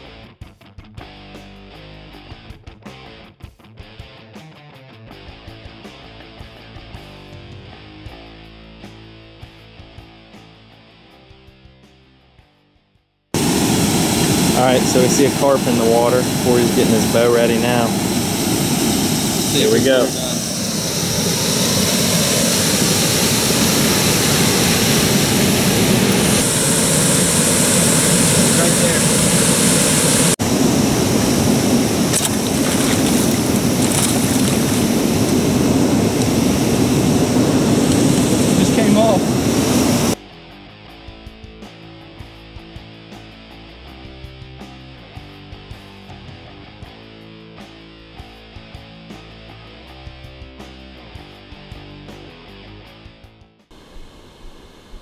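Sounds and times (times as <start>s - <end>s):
guitar music with steady beat: 0.0s - 12.6s, 40.2s - 53.7s
loud steady noise: 13.4s - 40.2s.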